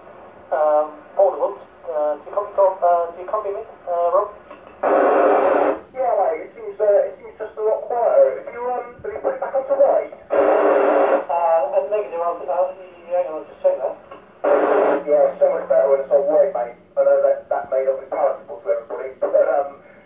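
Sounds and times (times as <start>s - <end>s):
speech through radio loudspeaker: 0.5s - 20.0s.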